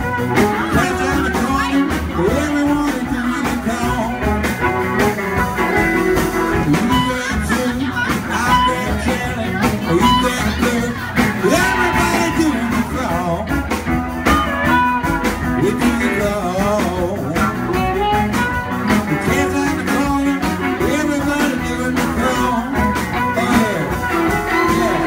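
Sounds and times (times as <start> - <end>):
bass guitar: 0.0 - 25.0
drum kit: 0.0 - 25.0
electric guitar: 0.0 - 25.0
harmonica: 4.6 - 13.0, 22.7 - 25.0.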